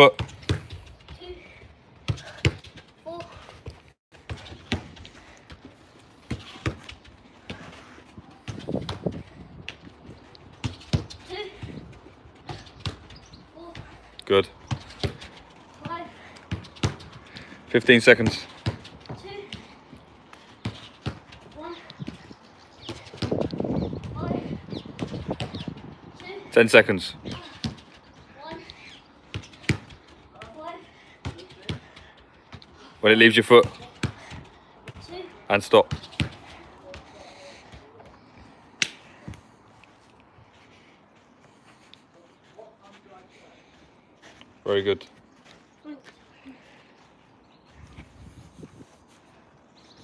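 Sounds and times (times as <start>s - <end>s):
shuffling steps: 33.7s - 49.9s.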